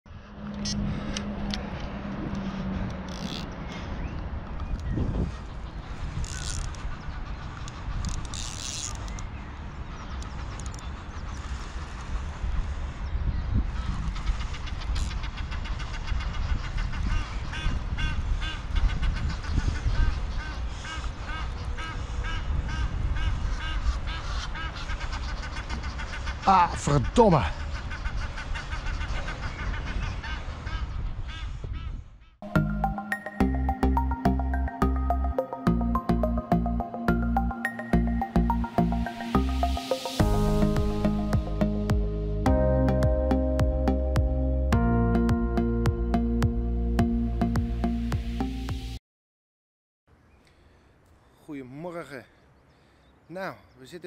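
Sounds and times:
wind buffeting microphone: 0.1 - 8.4, 9.0 - 26.3.

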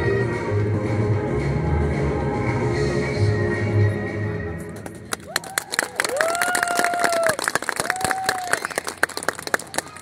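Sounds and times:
spectators clapping: 4.9 - 10.0.

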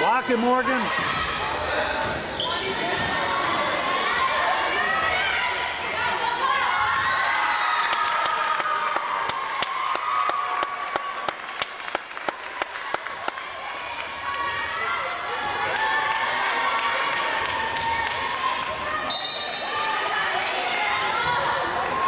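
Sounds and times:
voices of players and spectators: 0.0 - 22.0
referee's whistle: 7.1 - 7.9, 19.1 - 19.7.

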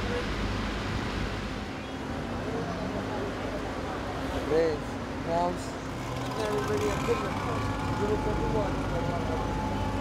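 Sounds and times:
passing traffic rumble: 0.0 - 10.0
people talking: 6.4 - 9.8.

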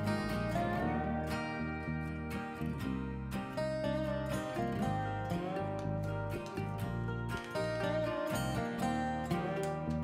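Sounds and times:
acoustic guitar instrumental: 0.0 - 10.0.

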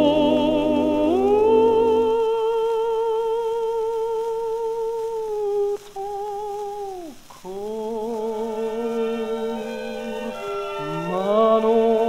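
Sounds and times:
operatic tenor singing with vibrato: 0.0 - 12.0
orchestral accompaniment: 8.8 - 12.0.

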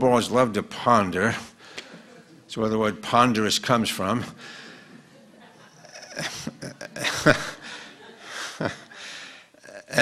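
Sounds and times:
audience laughter: 1.8 - 2.5, 4.5 - 9.2.

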